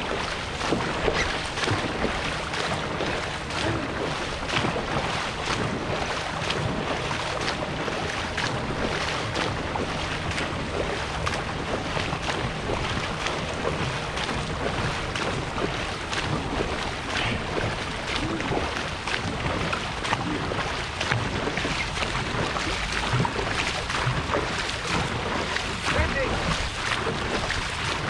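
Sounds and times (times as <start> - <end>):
paddles splashing: 0.0 - 28.0
water rushing past boat: 0.0 - 28.0
wind buffeting microphone: 0.0 - 28.0.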